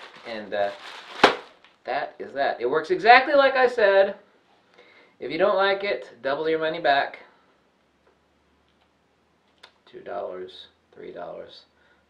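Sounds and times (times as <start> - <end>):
man speaking: 0.0 - 0.8, 1.9 - 4.2, 5.2 - 7.4, 9.8 - 11.7.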